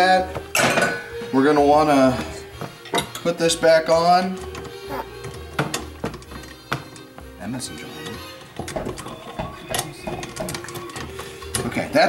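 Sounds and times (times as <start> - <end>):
music: 0.0 - 12.0
metal clicks and knocks: 8.0 - 11.8.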